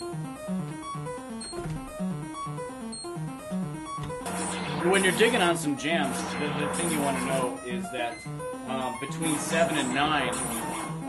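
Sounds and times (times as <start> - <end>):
synthesizer bass notes: 0.0 - 7.5
high electronic blips: 0.0 - 11.0.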